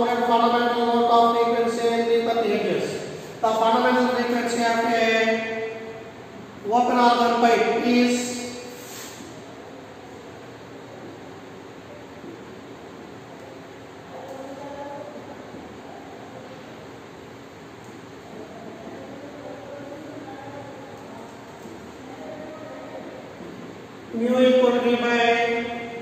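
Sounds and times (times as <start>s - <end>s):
room noise hiss: 0.0s - 26.0s
faint voice murmuring: 18.3s - 23.7s.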